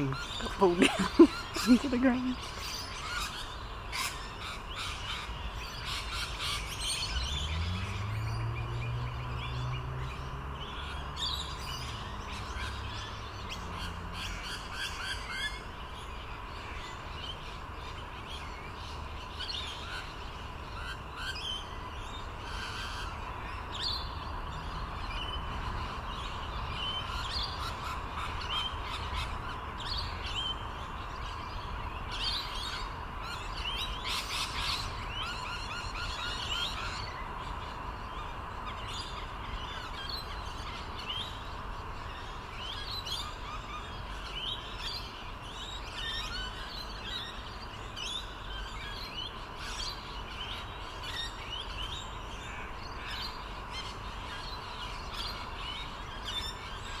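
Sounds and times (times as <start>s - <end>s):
birds chirping: 0.0s - 57.0s.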